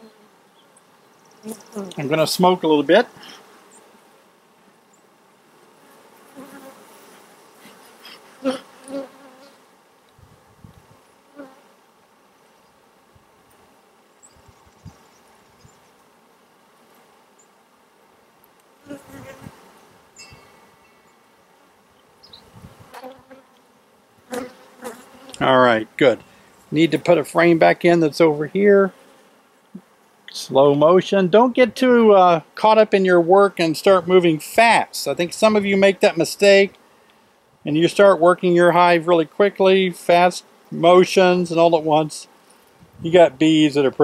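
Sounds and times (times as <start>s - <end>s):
bees buzzing: 0.0s - 44.0s.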